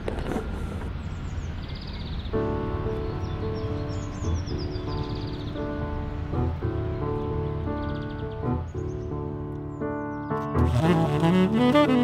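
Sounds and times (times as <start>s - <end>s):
birds chirping: 0.0s - 12.0s
grand piano chords: 2.0s - 12.0s.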